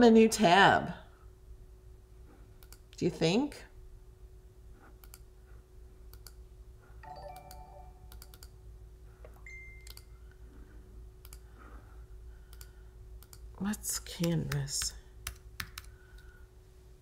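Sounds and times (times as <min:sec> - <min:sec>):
short chime tone: 0:07.0 - 0:08.1, 0:09.4 - 0:10.0.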